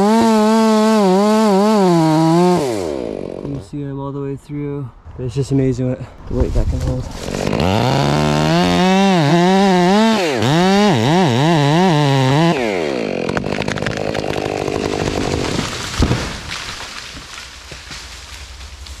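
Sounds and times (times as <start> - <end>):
chainsaw cutting wood: 0.0 - 3.7, 7.1 - 19.0
tree cracking and crashing down: 12.6 - 19.0.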